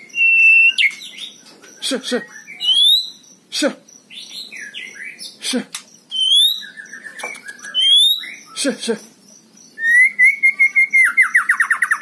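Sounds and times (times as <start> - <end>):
high bird chirping: 0.0 - 12.0.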